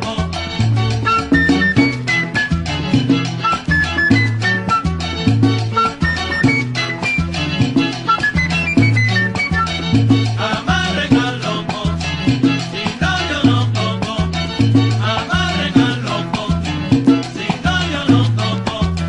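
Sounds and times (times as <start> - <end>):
salsa band music: 0.0 - 19.0.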